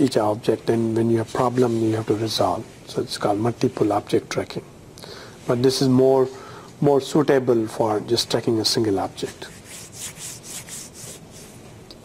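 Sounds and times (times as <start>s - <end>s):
soft rustling strokes: 0.7s - 4.2s, 8.4s - 11.9s.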